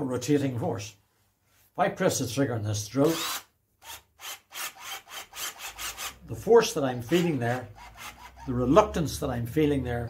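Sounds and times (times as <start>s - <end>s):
cordless drill rasping: 3.0s - 8.6s.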